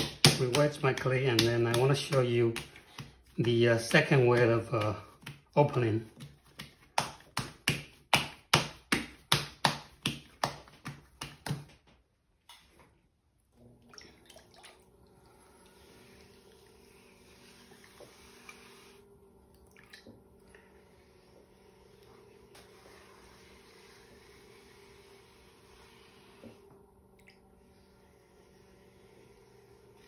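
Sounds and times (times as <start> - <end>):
potter's wheel humming: 0.0 - 6.3, 14.8 - 30.0
wet hands slapping clay: 0.0 - 12.6.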